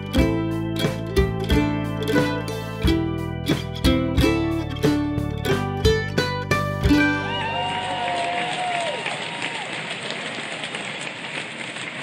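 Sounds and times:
fireworks crackling: 8.6s - 12.0s.

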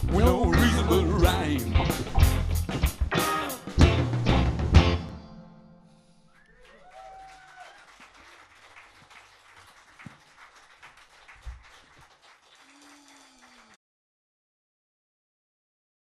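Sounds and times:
person whooping: 6.4s - 8.0s, 12.5s - 13.8s
scattered claps and clicks: 6.4s - 13.8s.

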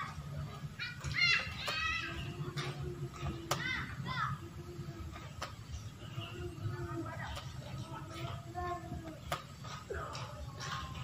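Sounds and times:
children shouting: 0.0s - 5.3s.

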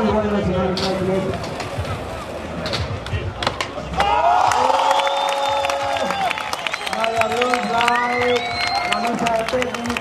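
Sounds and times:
crowd noise: 0.0s - 10.0s
skateboard rolling on concrete: 0.0s - 10.0s.

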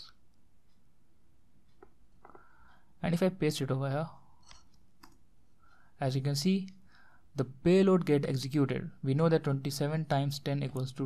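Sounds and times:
low room hiss: 0.0s - 11.0s.

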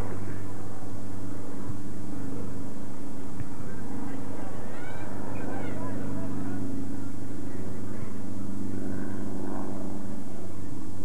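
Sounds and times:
steady low drone: 0.0s - 11.0s
distant shouts and calls: 3.9s - 8.2s.

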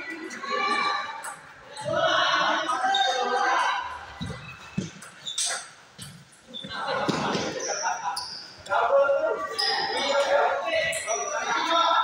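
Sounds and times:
people talking: 0.0s - 4.8s, 6.5s - 12.0s.

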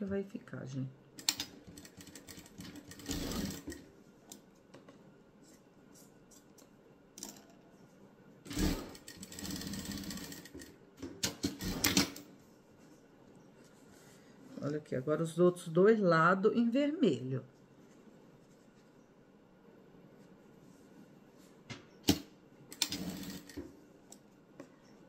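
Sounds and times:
sewing machine stitching: 1.2s - 3.8s, 8.5s - 12.2s, 22.8s - 23.6s.

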